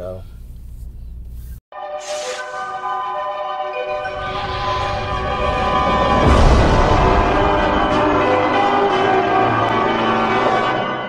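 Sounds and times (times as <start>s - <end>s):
ringing bell-like music sting: 1.8s - 11.0s.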